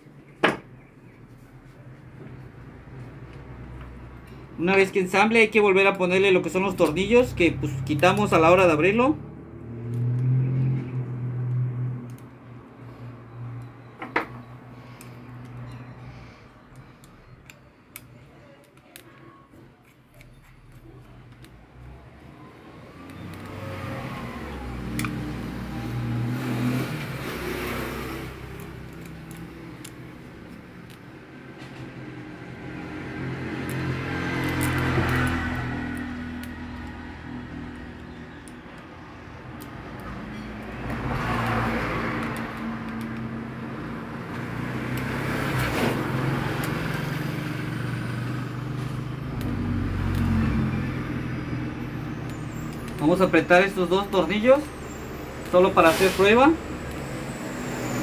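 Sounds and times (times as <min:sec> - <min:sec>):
road vehicles passing: 0:00.0 - 0:58.0
screwdriver clicking on screws: 0:28.5 - 0:31.1, 0:33.5 - 0:38.9.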